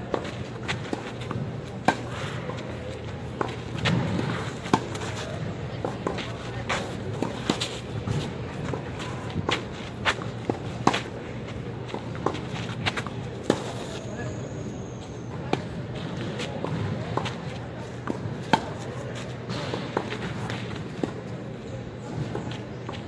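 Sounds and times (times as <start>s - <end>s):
racket hitting tennis ball: 0.1s - 11.2s, 11.8s - 14.0s, 15.6s - 21.2s
tennis ball bouncing: 0.1s - 11.2s, 15.5s - 21.3s.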